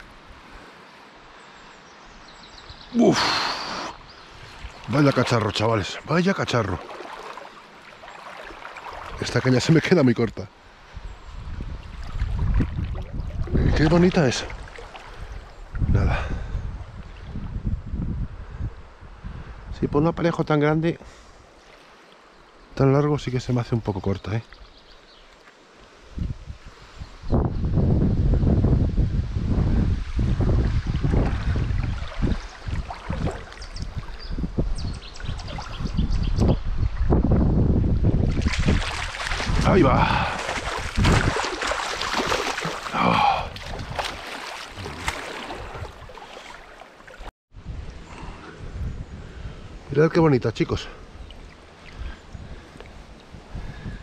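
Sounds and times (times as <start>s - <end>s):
faint water splashing: 0.0s - 17.4s, 21.0s - 26.2s, 30.0s - 37.2s, 38.2s - 47.3s, 50.7s - 54.0s
fish splashing in water: 6.8s - 9.2s, 12.0s - 15.5s, 30.8s - 34.2s, 38.3s - 47.3s
wind buffeting microphone: 10.9s - 20.0s, 26.1s - 46.6s, 47.5s - 54.0s.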